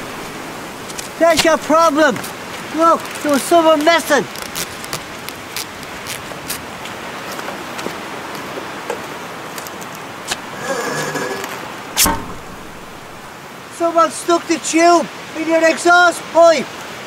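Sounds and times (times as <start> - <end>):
steady rain: 0.0 - 17.0
squeaky scrape: 10.3 - 13.3
sharp thump: 12.0 - 13.3.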